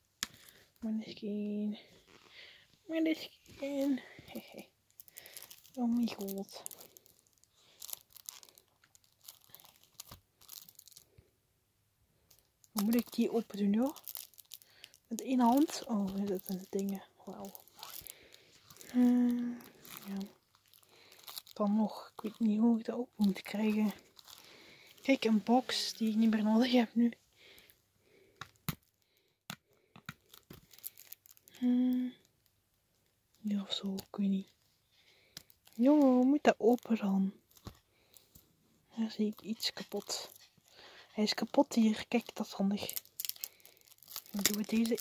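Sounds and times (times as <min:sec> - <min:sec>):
plastic wrap crinkling: 0:00.1 - 0:11.3, 0:12.3 - 0:32.5, 0:33.1 - 0:45.0.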